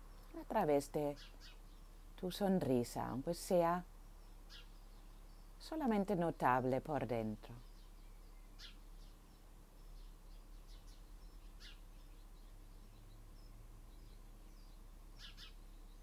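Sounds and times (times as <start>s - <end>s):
faint birds chirping: 0.0s - 16.0s
low steady hum: 0.0s - 16.0s.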